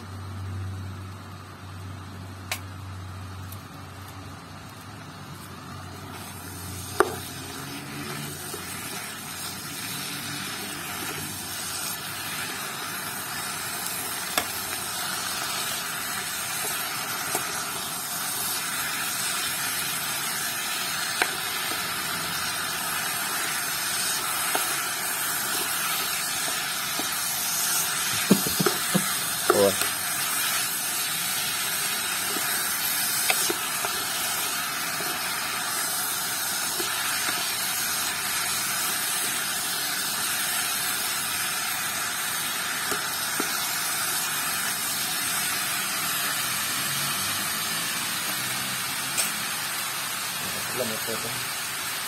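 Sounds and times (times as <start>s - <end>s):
beef sizzling: 0.0s - 52.0s.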